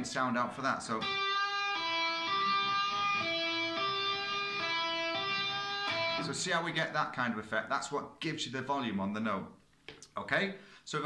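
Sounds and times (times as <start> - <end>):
electric guitar single ringing notes: 1.0 - 6.3.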